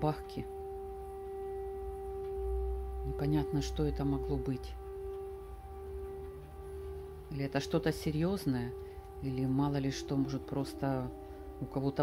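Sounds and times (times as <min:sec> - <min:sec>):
distant air-raid siren: 0:00.0 - 0:12.0.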